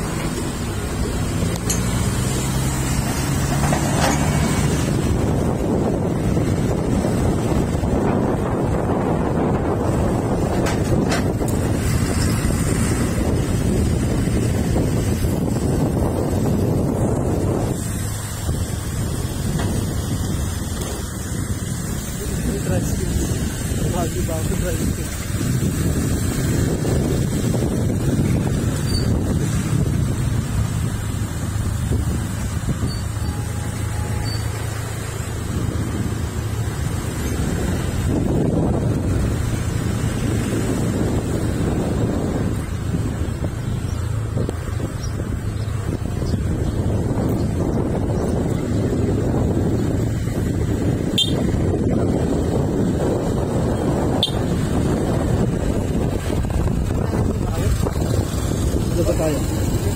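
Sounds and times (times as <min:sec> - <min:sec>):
wind buffeting microphone: 0:00.0 - 0:59.9
motorcycle engine running: 0:35.2 - 0:59.9.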